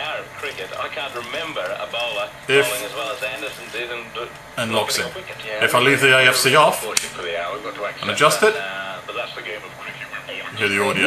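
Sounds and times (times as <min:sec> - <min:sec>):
man's voice over radio: 0:00.0 - 0:11.0.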